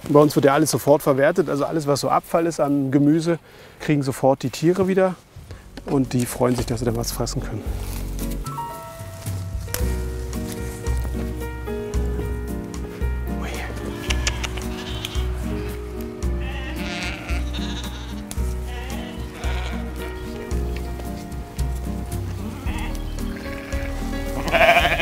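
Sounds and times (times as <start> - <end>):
background music with steady beat: 5.4 - 25.0
sheep bleating: 13.4 - 20.3, 22.4 - 25.0.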